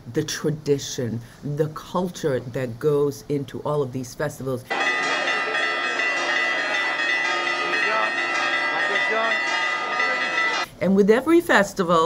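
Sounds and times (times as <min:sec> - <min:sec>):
church bells ringing: 0:04.7 - 0:10.7.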